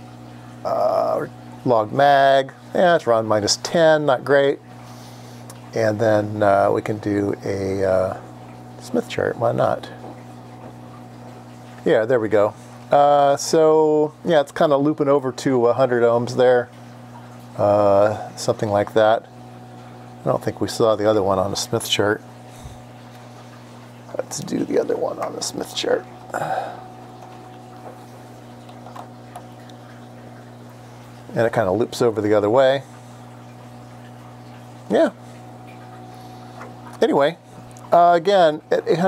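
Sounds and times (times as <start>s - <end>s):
low electrical mains hum: 0.0s - 39.0s.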